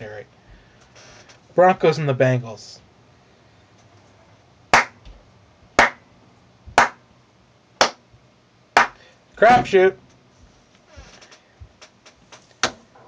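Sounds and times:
single hand claps: 4.7s - 5.1s, 5.8s - 6.0s, 6.8s - 7.0s, 7.8s - 8.0s, 8.8s - 9.0s.

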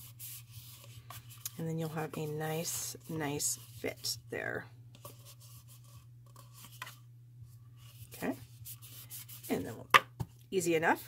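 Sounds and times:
paper rustling and rubbing: 0.0s - 4.2s, 5.0s - 7.0s, 7.7s - 9.8s
steady low hum: 0.0s - 11.0s.

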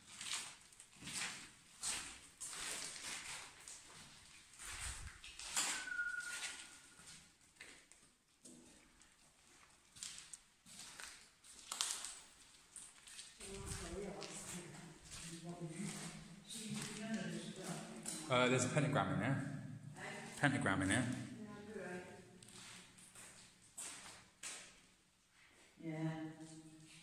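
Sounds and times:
footsteps on tunnel floor: 0.0s - 5.5s, 8.4s - 18.1s, 22.3s - 24.7s.

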